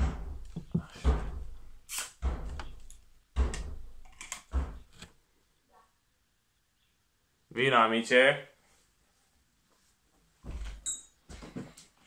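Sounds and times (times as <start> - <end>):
dull thumps and knocks: 0.0 - 5.1.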